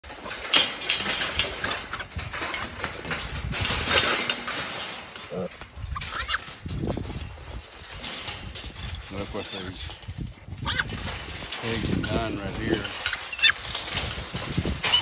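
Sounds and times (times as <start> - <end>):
hooves rattling wire cage: 0.0 - 15.0
piglets squealing: 5.4 - 6.5, 10.6 - 11.0.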